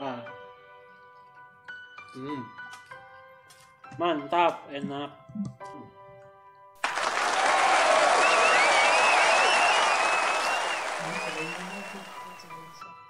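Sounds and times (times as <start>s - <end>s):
crowd cheering and applause: 6.8s - 12.7s
high wavering whistle: 7.5s - 12.7s.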